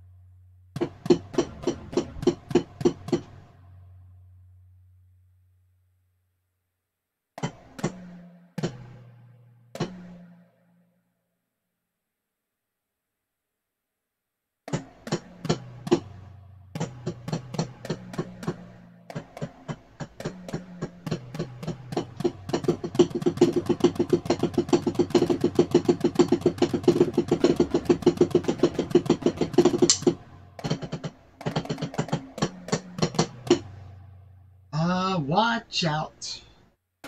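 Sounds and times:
electronic drum pattern: 0:00.8 - 0:03.5, 0:16.8 - 0:33.8.

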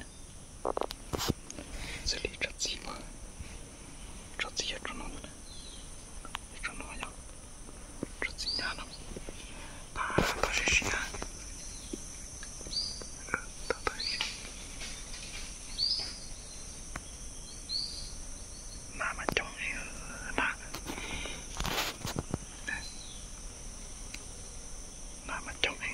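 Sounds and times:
high insect drone: 0:00.0 - 0:25.9
songbird calling: 0:04.5 - 0:07.2, 0:08.2 - 0:19.8, 0:22.4 - 0:23.3.

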